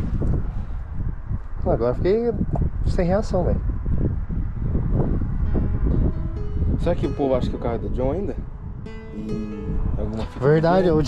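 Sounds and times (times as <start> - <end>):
wind rumbling on microphone: 0.0 - 11.0
faint background music: 5.5 - 11.0.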